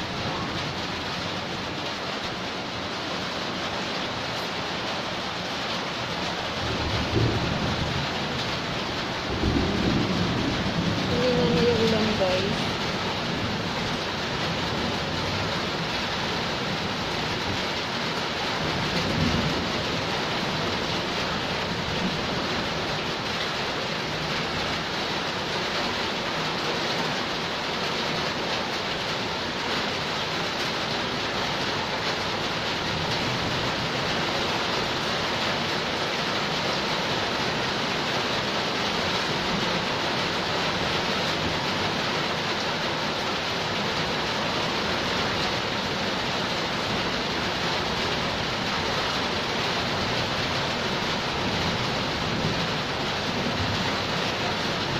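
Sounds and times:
heavy rain on puddles: 0.0s - 54.9s.

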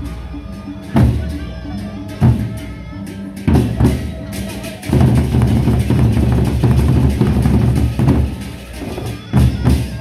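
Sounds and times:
cymbals: 0.0s - 10.0s
barrel drums beaten with sticks: 2.1s - 10.0s.

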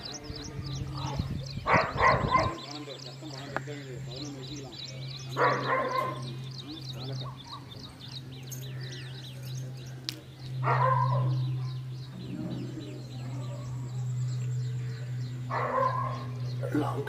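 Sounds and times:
small birds chirping: 0.0s - 17.0s
steady low hum: 0.0s - 17.0s
dog barking: 1.7s - 2.6s, 5.4s - 6.3s, 10.6s - 11.8s, 15.5s - 16.3s.

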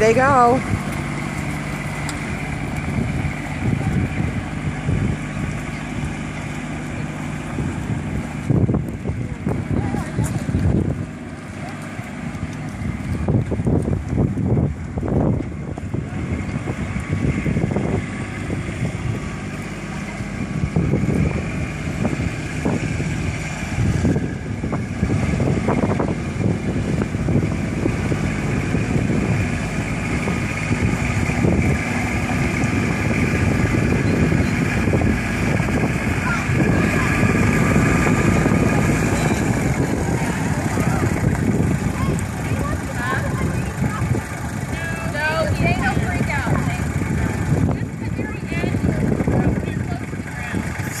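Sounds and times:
diesel tractor running: 0.0s - 51.0s.

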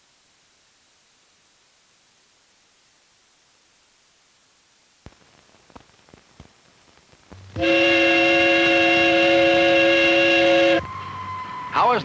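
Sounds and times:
steam whistle blast: 7.6s - 12.0s.

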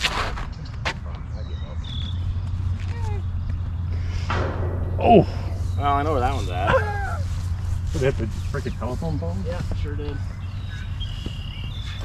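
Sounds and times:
steady low rumble: 1.0s - 11.7s.

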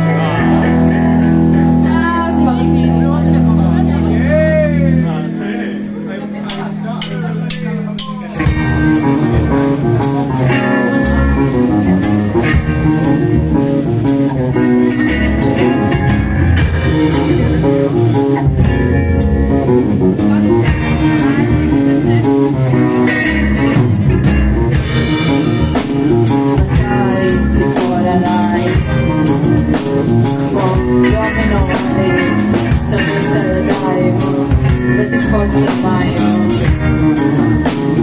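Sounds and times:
live rock band playing: 0.0s - 38.0s.

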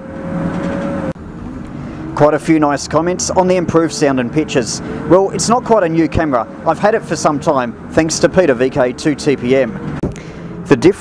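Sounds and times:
vehicle low rumble: 0.0s - 11.0s.

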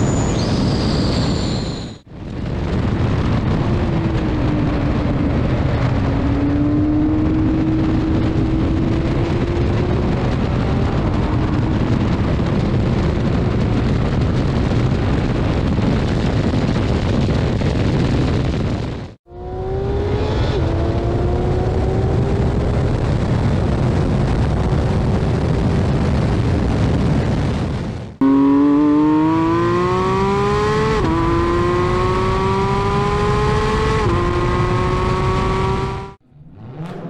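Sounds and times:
sports car engine at full throttle: 2.1s - 37.0s.

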